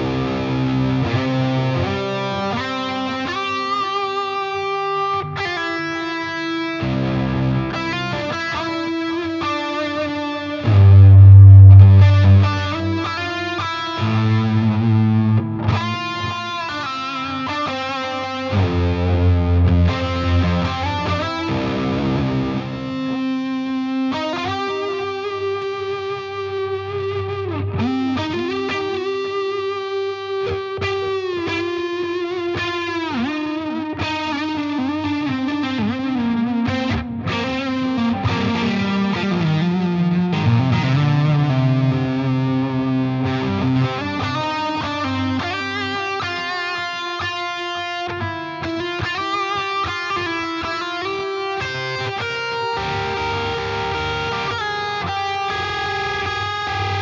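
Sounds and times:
electric guitar lead lines: 0:00.0 - 0:57.0
heavy electric guitar chords: 0:00.0 - 0:57.0.

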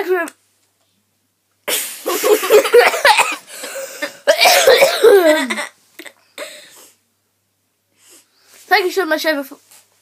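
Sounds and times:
boy laughing: 0:01.7 - 0:06.1
boy coughing: 0:01.7 - 0:06.7.

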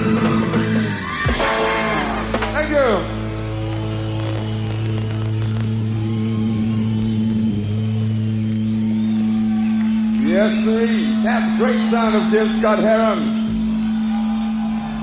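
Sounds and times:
man's voice: 0:10.2 - 0:13.4.

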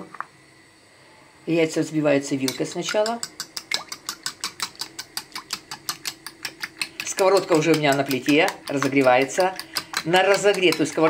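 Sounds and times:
fork whisking eggs in bowl: 0:02.4 - 0:11.0.

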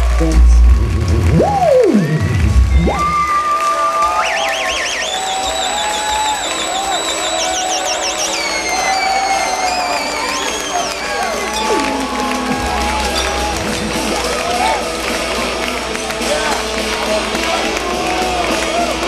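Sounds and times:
deep bass rumble: 0:00.0 - 0:03.4, 0:12.4 - 0:14.7
high whining electronic tones: 0:01.0 - 0:03.5.

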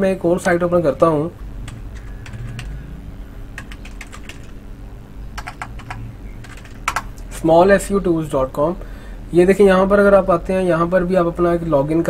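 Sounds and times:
typing on computer keyboard: 0:01.7 - 0:02.8, 0:03.6 - 0:04.6, 0:05.4 - 0:07.1.

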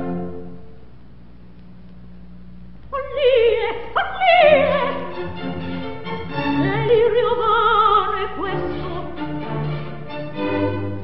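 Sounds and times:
record surface hiss: 0:00.0 - 0:11.0.

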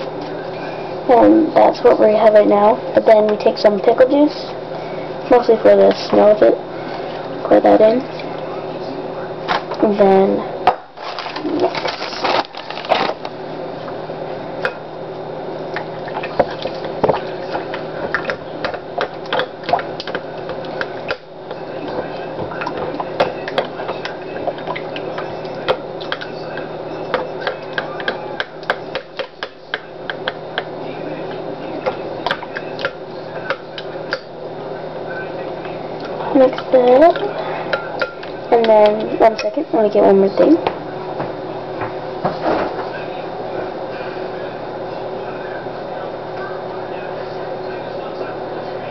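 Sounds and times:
steady low hum: 0:00.0 - 0:48.9.

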